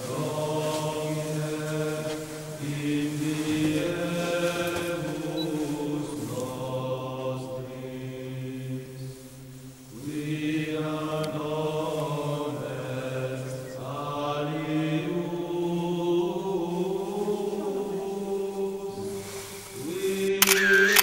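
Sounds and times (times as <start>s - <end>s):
voices chanting long notes: 0.0s - 21.0s.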